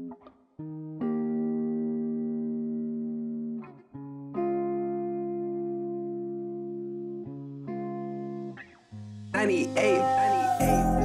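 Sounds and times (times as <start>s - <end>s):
sustained guitar chords: 0.7s - 11.0s.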